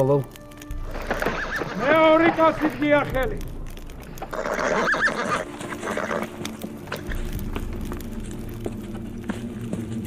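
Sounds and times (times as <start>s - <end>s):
horse neighing: 1.1s - 1.8s, 4.3s - 6.4s.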